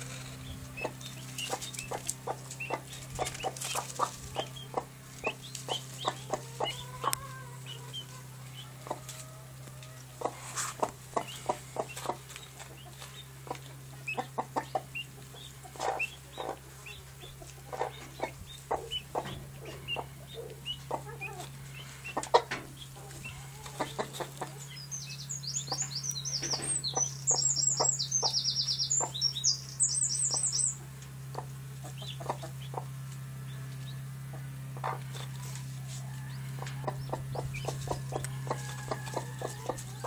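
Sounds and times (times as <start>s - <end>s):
hen clucking softly: 0.0s - 24.8s, 25.6s - 29.3s, 30.2s - 33.0s, 33.8s - 40.0s
chicks peeping: 0.0s - 40.0s
steady low hum: 0.0s - 40.0s.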